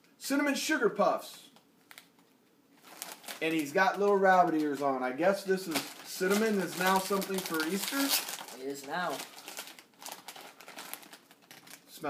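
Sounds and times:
plastic chip bag crinkling: 1.8s - 4.8s, 5.5s - 12.0s.

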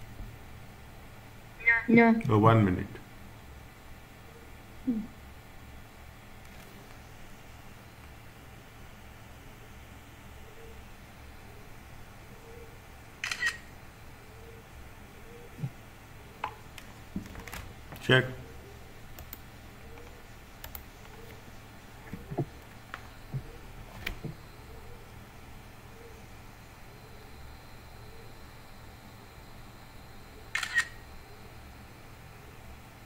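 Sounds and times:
faint room noise: 0.0s - 33.0s
camera shutter click: 13.2s - 13.7s, 30.5s - 31.0s.

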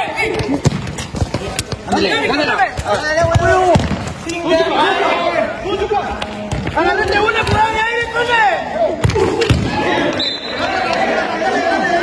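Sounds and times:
players shouting: 0.0s - 12.0s
ball kicked and bouncing on concrete: 0.2s - 4.2s, 6.4s - 8.0s.

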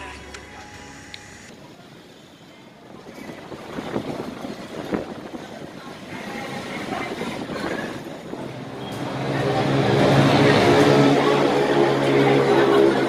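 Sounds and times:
passing vehicles rushing: 8.4s - 13.0s.

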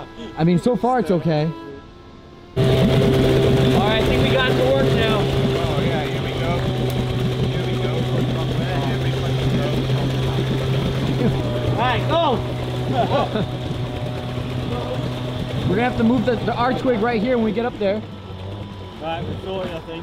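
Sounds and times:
outboard motor running: 0.0s - 20.0s
water churning: 2.6s - 20.0s.

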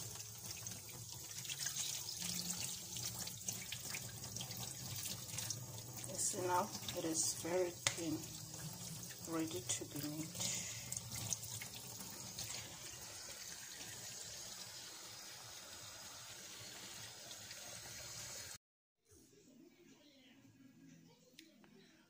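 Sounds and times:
tap water running into sink: 0.0s - 18.6s.

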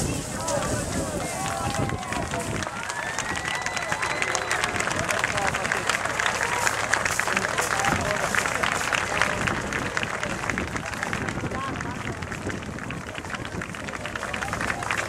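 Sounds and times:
crowd voices calling out: 0.0s - 12.2s.

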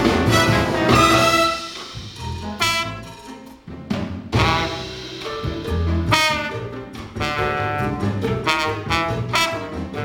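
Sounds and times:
trombone solo: 0.0s - 3.2s, 4.4s - 5.1s, 6.0s - 10.0s
jazz big band accompaniment: 0.0s - 10.0s.

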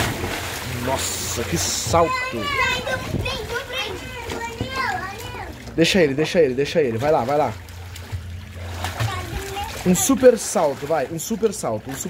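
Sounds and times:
water splashing in a pool: 0.0s - 12.0s.

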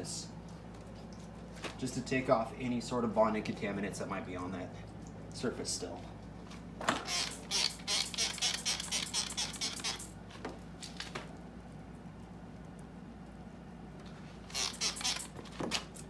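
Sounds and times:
spray bottle squirts: 7.1s - 10.1s, 14.5s - 16.0s.

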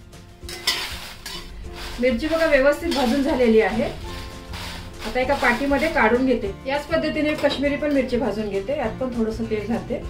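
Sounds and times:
light sizzle: 0.4s - 6.6s
ladle stirring chillies in a pan: 0.4s - 8.5s.

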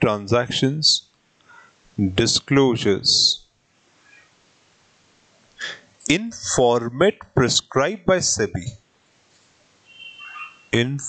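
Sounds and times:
man's sharp intake of breath: 1.5s - 1.8s, 5.6s - 5.9s.

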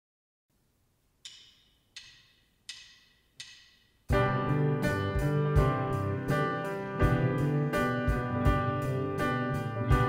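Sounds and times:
drumsticks clicking together: 1.2s - 3.9s.

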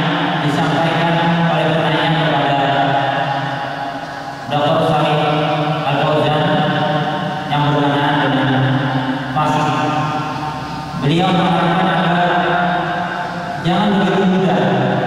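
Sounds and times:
man chanting melodic recitation: 0.0s - 3.7s, 4.4s - 15.0s.

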